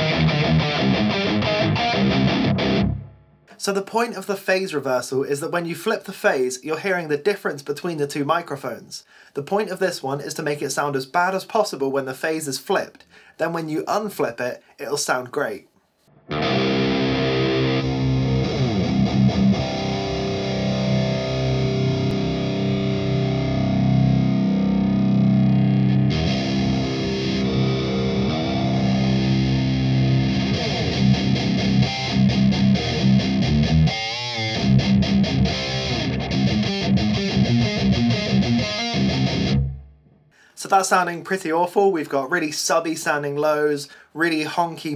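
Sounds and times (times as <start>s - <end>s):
distorted electric guitar: 0.0s - 3.6s, 16.1s - 40.1s.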